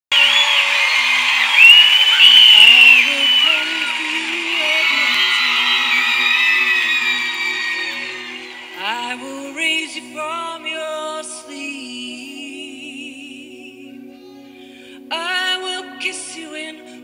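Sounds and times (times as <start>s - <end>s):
woman singing into microphone: 2.5s - 6.5s, 8.8s - 13.8s, 15.1s - 17.0s.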